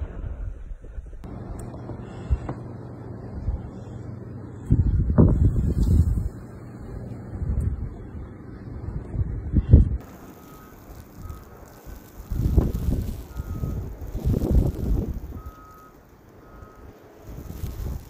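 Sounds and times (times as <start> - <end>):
wind buffeting microphone: 4.7 - 18.0.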